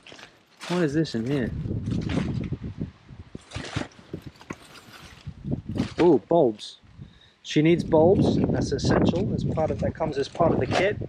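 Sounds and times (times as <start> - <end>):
plastic bag crinkling and rustling: 0.0 - 2.6, 3.4 - 6.2.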